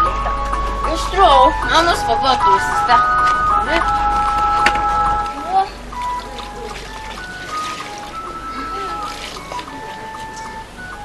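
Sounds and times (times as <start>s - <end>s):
electronic keyboard held notes: 0.0s - 11.0s.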